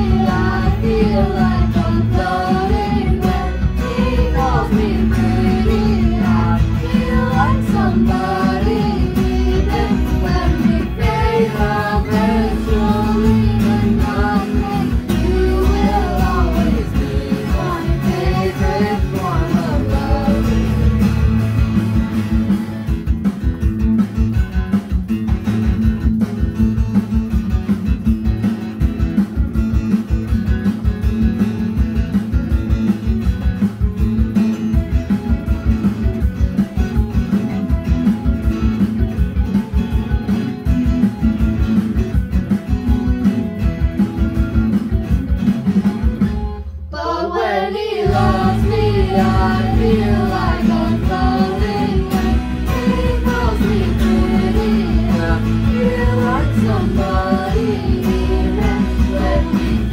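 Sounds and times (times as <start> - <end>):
children singing: 0.0 - 21.0, 46.9 - 59.9
acoustic guitar strumming: 0.0 - 59.9.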